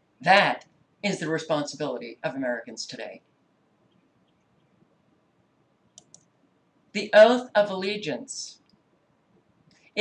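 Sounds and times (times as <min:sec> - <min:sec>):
person speaking: 0:00.2 - 0:03.3, 0:07.0 - 0:08.6
computer mouse clicks: 0:05.9 - 0:06.3.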